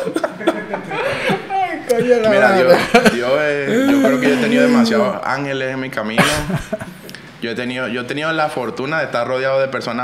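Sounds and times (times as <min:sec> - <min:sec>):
men chuckling and laughing: 0:00.0 - 0:01.6, 0:02.4 - 0:04.8.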